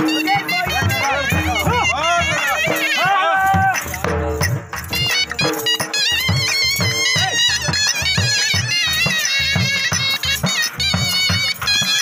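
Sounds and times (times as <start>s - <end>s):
reedy wind instrument melody: 0.0s - 12.0s
steady drum beat: 0.0s - 12.0s.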